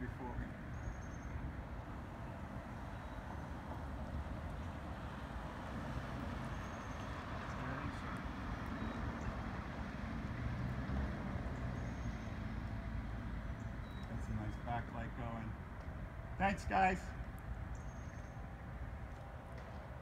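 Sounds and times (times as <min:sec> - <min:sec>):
low street rumble with hiss: 0:00.0 - 0:20.0.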